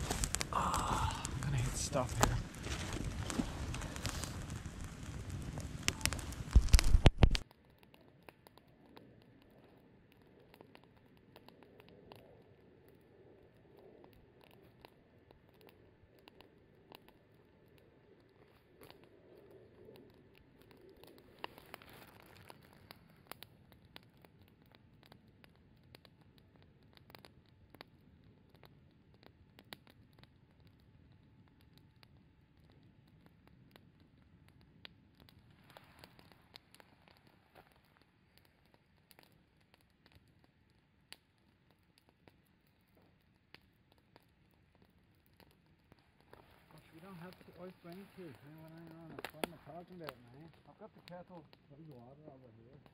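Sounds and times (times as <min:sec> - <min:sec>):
burning branches snapping: 0:00.0 - 0:09.4, 0:14.4 - 0:25.3, 0:33.6 - 0:40.3, 0:42.0 - 0:52.9
campfire crackling: 0:00.0 - 0:52.9.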